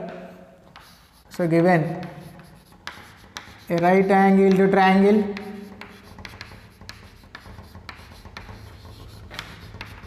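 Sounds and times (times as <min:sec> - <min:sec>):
chalk tapping and scratching on chalkboard: 0:00.1 - 0:10.0.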